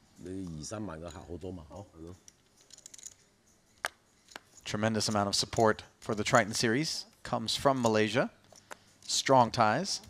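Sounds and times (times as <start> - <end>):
poker chips clicking: 2.3 - 3.2.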